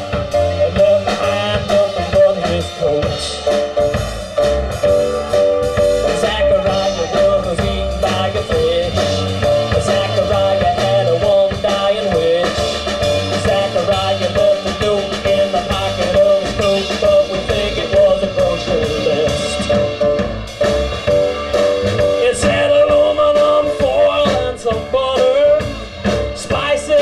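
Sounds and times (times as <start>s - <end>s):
drum kit steady beat: 0.0s - 27.0s
walking upright bass: 0.0s - 27.0s
wavering lead melody: 0.0s - 27.0s.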